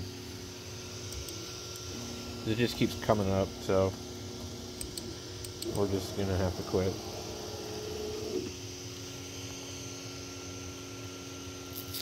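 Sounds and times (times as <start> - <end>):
printer fans and motors humming: 0.0 - 12.0.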